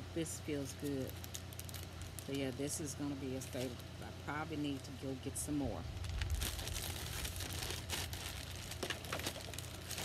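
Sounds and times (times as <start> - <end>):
tissue paper crinkling: 1.0 - 2.6, 6.0 - 10.0.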